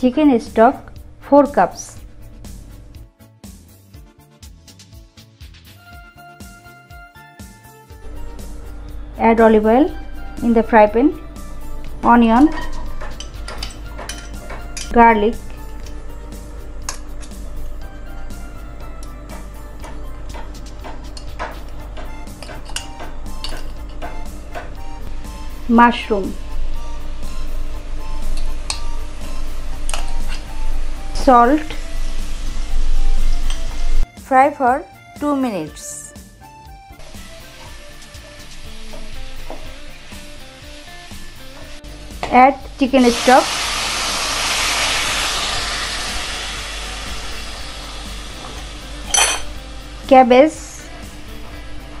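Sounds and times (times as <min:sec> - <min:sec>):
kitchenware clinking against pan: 0:12.5 - 0:14.9, 0:49.1 - 0:49.5
vegetables sizzling in oil: 0:25.4 - 0:34.0, 0:37.0 - 0:51.8.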